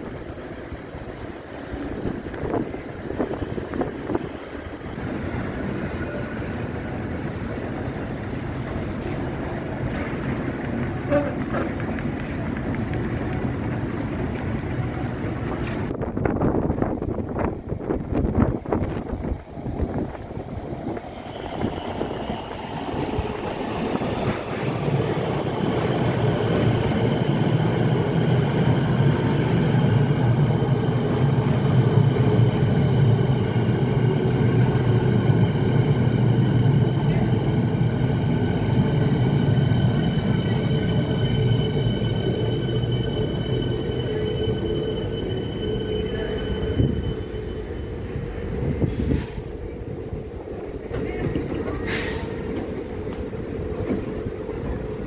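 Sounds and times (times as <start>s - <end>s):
electric train rumbling and whining: 0.0s - 55.0s.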